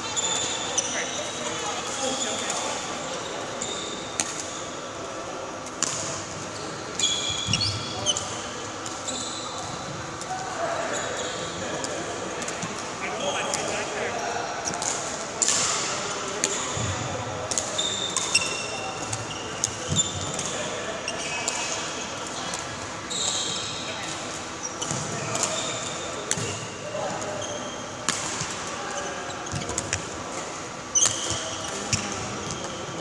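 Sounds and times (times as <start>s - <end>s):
shoes squeaking on court floor: 0.0s - 5.0s, 5.7s - 9.9s, 17.7s - 21.6s, 23.1s - 28.1s, 28.9s - 30.2s, 30.8s - 33.0s
murmur of voices: 0.0s - 33.0s
shoes squeaking on court: 0.1s - 4.8s, 6.6s - 8.4s, 27.3s - 28.1s, 29.0s - 30.2s, 30.9s - 32.8s.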